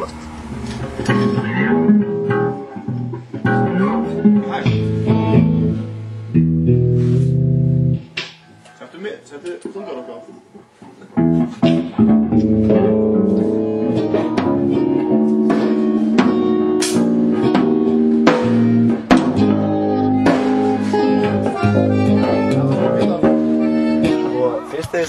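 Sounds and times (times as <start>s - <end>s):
guitar chords: 0.0s - 8.4s, 9.8s - 25.0s
steady drum beat: 13.2s - 24.3s.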